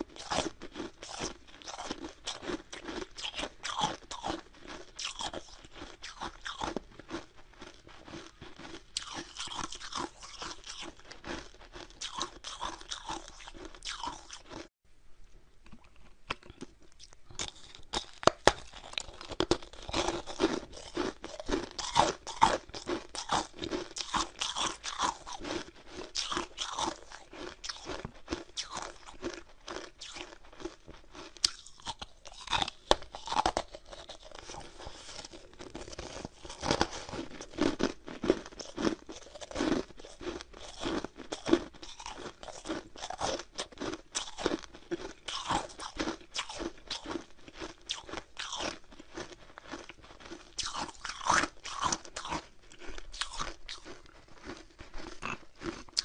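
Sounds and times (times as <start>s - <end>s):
person chewing ice crunches: 0.0s - 14.7s, 15.6s - 56.0s.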